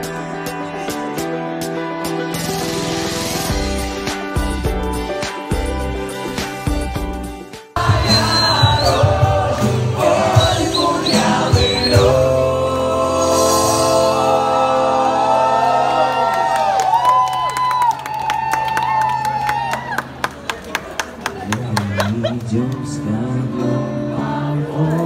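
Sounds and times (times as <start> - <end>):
guitar: 0.0 - 14.7, 21.6 - 25.0
people singing: 7.8 - 15.9, 23.0 - 25.0.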